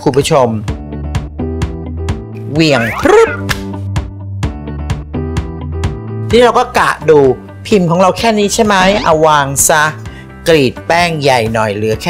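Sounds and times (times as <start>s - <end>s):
gliding voice exclamation: 2.7s - 3.5s
plucked guitar music with bass: 2.7s - 3.7s.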